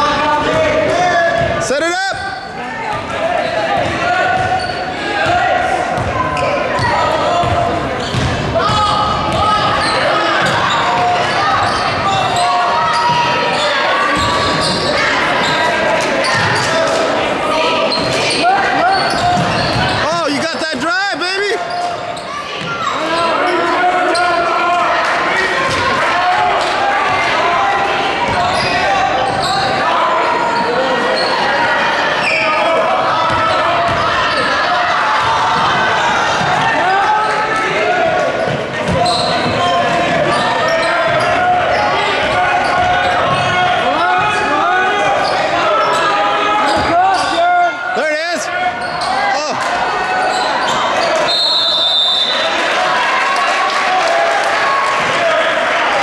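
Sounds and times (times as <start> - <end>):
players and spectators calling out: 0.0 - 56.0.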